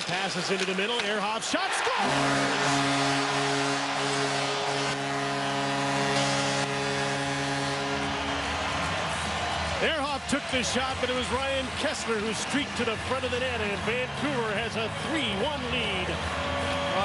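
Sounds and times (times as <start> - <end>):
crowd cheering: 0.0 - 17.0
goal horn blast: 1.9 - 10.2.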